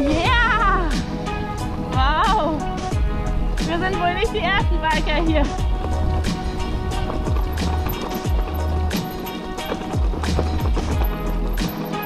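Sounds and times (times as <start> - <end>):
music with deep bass and drums: 0.0 - 12.0.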